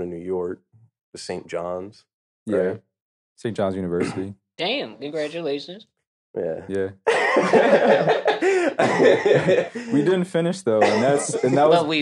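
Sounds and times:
men talking: 0.0 - 4.4, 6.4 - 12.0
men laughing: 7.0 - 12.0.

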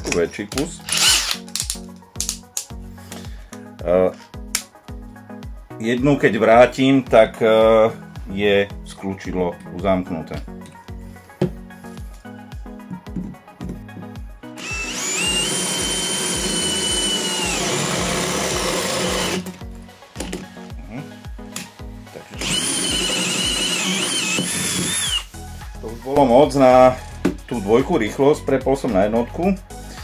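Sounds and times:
background music with steady beat: 0.0 - 30.0
cordless drill motor whine: 0.9 - 1.4, 14.6 - 19.4, 22.4 - 25.3.

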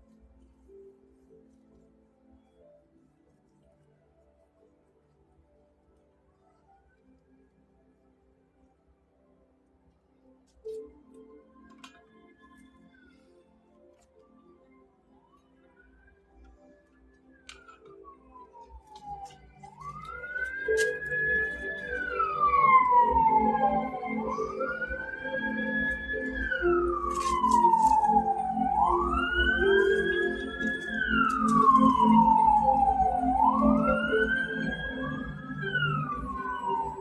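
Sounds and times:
siren wailing: 17.5 - 37.0.

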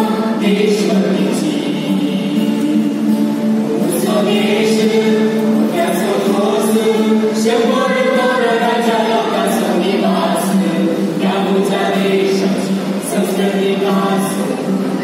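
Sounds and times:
vocal group singing in harmony: 0.0 - 15.0.

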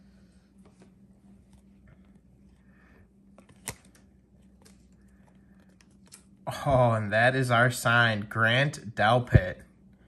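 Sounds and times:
trading cards shuffled: 3.3 - 6.3.

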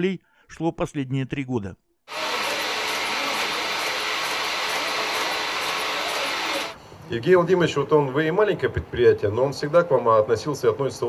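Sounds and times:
machine whir: 2.1 - 6.8.

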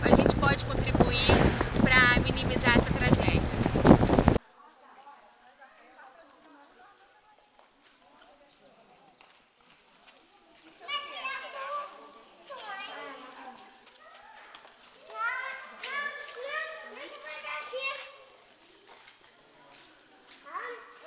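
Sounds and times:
children calling and shouting: 9.8 - 21.0.

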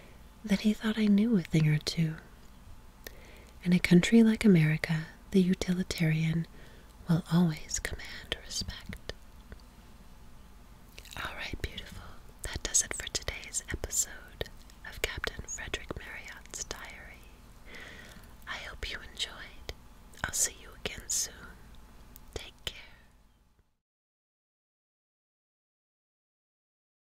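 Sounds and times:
woman whispering: 0.5 - 2.3, 3.6 - 6.5, 7.1 - 9.2, 11.0 - 17.3, 18.4 - 21.6, 22.4 - 23.1.

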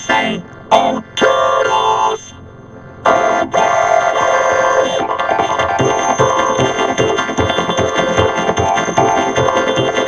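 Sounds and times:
buzzing vocoded synthesizer chord: 3.1 - 10.0.

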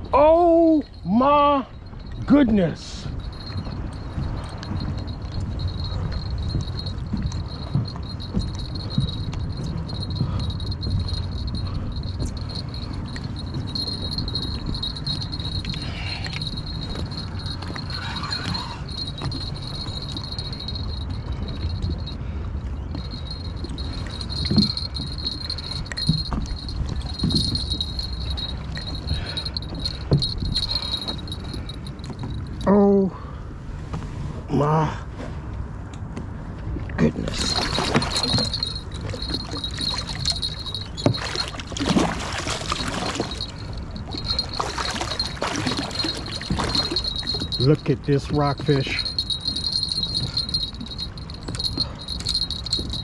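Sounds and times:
thin high whine: 0.0 - 22.2
wind rumble on microphone: 0.0 - 53.0.

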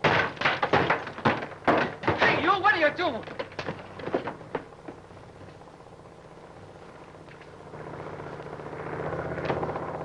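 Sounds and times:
propeller aircraft engines droning: 1.5 - 10.0.

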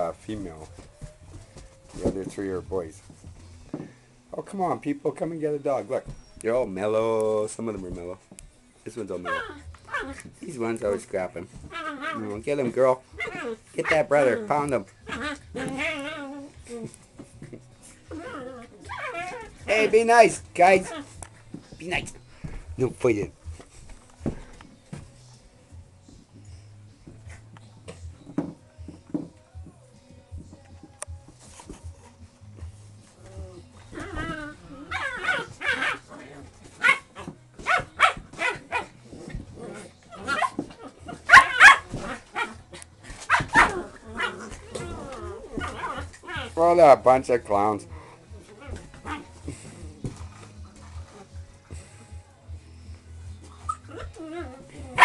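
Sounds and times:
puppies growling and whining: 9.2 - 10.4, 11.6 - 12.5, 13.1 - 19.7, 33.0 - 37.4, 38.0 - 46.8, 47.8 - 51.9, 53.4 - 55.0.

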